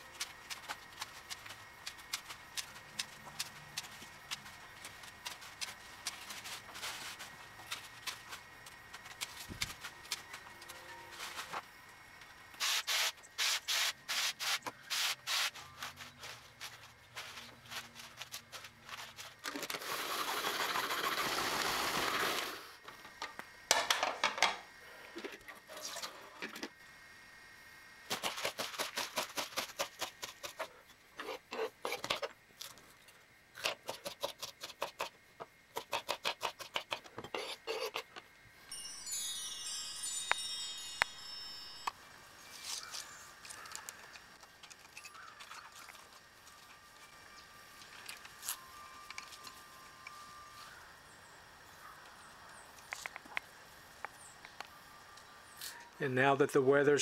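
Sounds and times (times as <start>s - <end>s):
steady hiss: 0.0s - 35.8s, 46.1s - 57.0s
high chirps: 38.7s - 43.4s.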